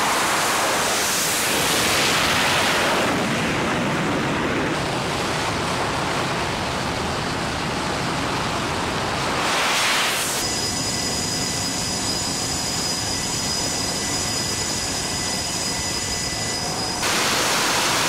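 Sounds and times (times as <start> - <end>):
jet engines roaring at full power: 0.0 - 18.0.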